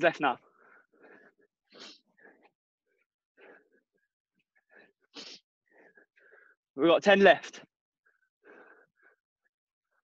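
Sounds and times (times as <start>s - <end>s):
man breathing in quick puffs: 0.5s - 2.6s, 4.6s - 6.6s, 8.1s - 9.2s
sharp exhale: 1.7s - 2.1s, 5.2s - 5.4s.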